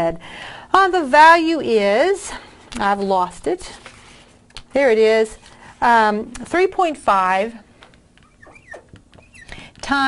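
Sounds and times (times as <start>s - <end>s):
marker squeaking on glass: 8.2s - 9.7s.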